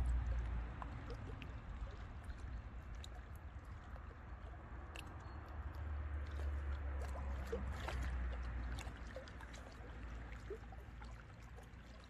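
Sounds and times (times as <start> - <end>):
waves lapping against rocks: 0.0 - 12.0.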